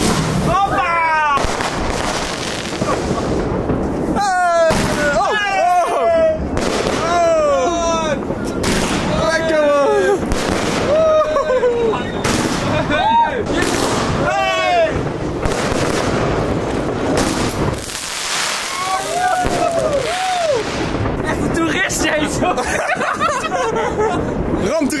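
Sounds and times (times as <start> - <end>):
fireworks bangs and crackling: 0.0 - 25.0
people exclaiming: 0.4 - 3.4, 4.1 - 15.2, 18.4 - 20.8.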